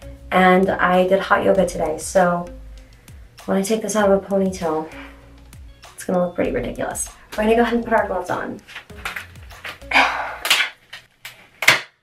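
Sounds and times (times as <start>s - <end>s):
disposable gloves crackling: 8.6s - 11.9s
glove snapping: 8.8s - 12.0s.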